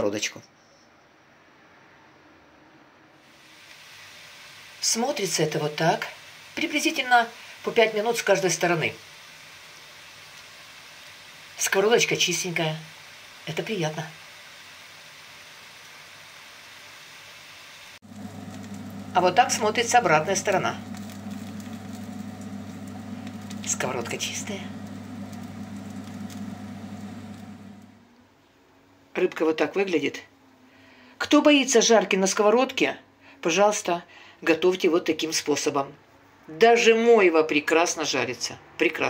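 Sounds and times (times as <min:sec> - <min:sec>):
faint hiss and crackle: 0:03.2 - 0:28.0
fish cooking in frying pan: 0:07.4 - 0:11.7, 0:14.2 - 0:28.0
low electric hum: 0:18.0 - 0:28.2.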